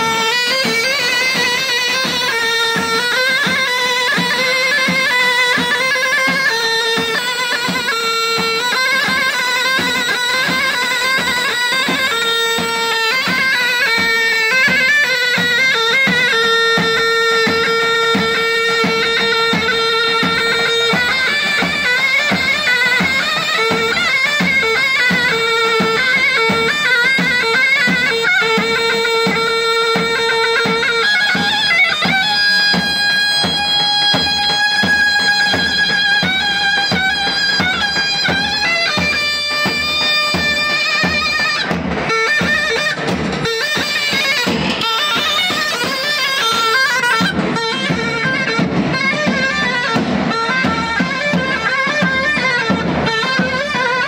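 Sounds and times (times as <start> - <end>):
reedy wind instrument melody: 0.0 - 54.0
steady drum beat: 0.0 - 54.0.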